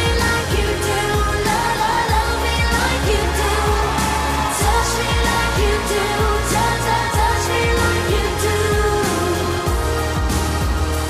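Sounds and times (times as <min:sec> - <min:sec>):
pop song with singing: 0:00.0 - 0:11.0.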